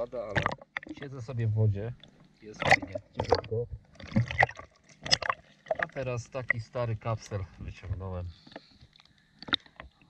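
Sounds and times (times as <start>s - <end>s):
water lapping and sloshing: 2.0s - 7.3s
person speaking: 5.8s - 8.4s.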